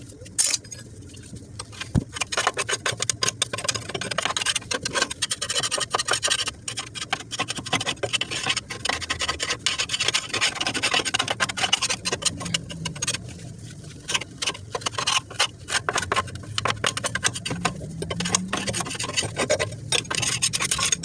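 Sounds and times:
scraping under mower deck: 8.0 - 21.0.

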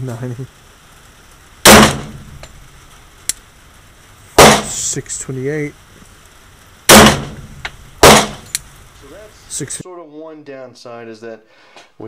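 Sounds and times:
pistol shot echoing: 1.6 - 2.4, 4.4 - 4.8, 6.9 - 8.6
small clicks: 2.4 - 3.5, 8.4 - 8.7.

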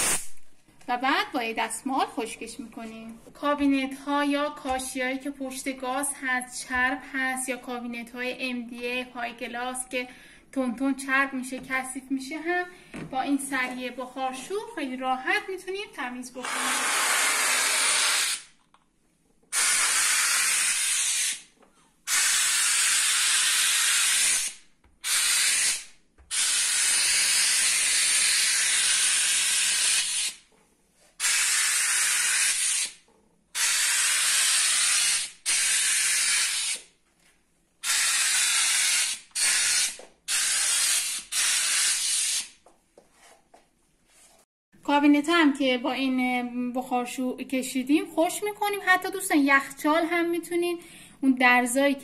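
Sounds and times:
steam cleaner hissing: 19.5 - 21.4.

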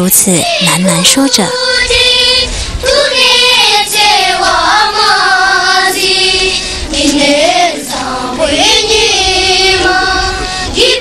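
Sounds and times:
high voice singing held notes: 0.0 - 2.4.

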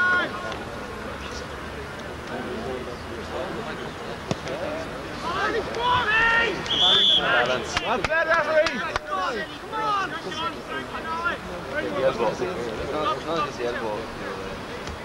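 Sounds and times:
people shouting: 5.2 - 11.4
referee's whistle blast: 6.6 - 7.4.

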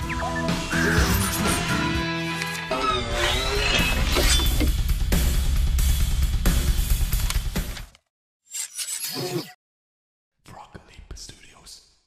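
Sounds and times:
person whispering: 10.4 - 12.0.

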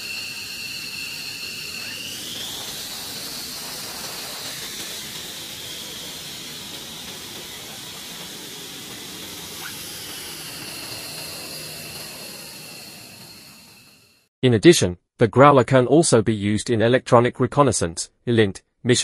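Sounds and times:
rushing hiss: 0.0 - 14.0
jet turbine whine: 0.0 - 14.3.

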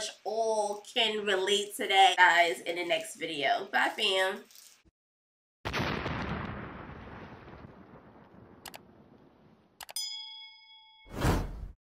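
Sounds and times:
explosion blast: 5.7 - 9.8
sharp clicks: 8.6 - 8.8, 9.8 - 10.0
bell-like ding: 10.0 - 11.2.

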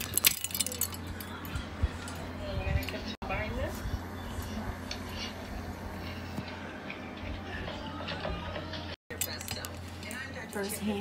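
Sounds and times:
small hard objects jangling: 0.0 - 1.4
steady low hum: 0.0 - 11.0.

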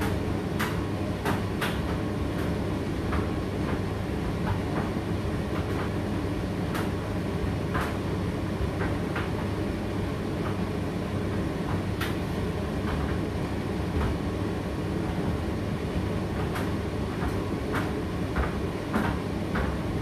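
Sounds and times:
tumble dryer humming and rumbling: 0.0 - 20.0
tumbling load clicks and knocks: 11.3 - 14.3, 16.0 - 20.0.

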